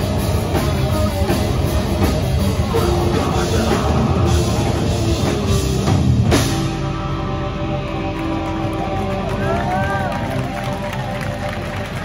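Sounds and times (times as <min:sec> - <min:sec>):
electric guitar drone: 0:00.0 - 0:12.0.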